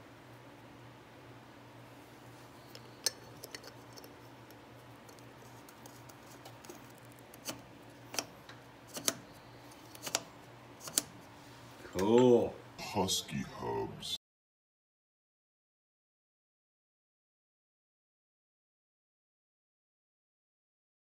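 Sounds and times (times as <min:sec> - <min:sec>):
faint steady hum: 0:00.0 - 0:14.2.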